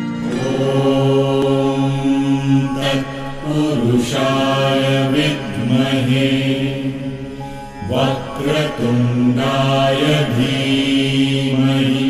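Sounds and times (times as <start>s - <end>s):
instrumental accompaniment: 0.0s - 11.8s
person chanting long steady notes: 0.0s - 12.0s.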